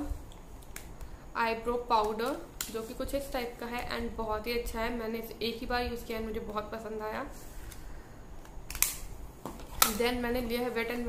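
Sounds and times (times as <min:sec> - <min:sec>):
person speaking: 0:01.4 - 0:07.4, 0:09.8 - 0:11.0
sharp plastic click: 0:08.4 - 0:09.1.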